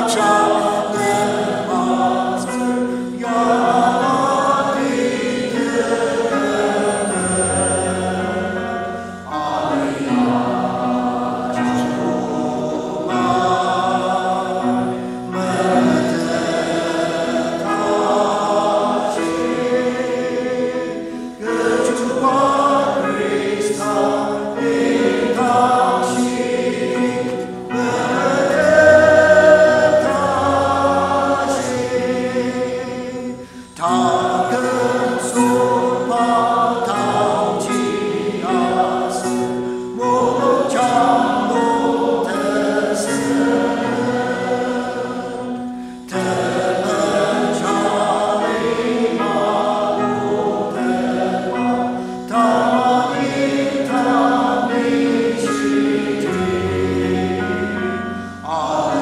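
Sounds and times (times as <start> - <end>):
congregation and choir singing hymn: 0.0 - 59.0.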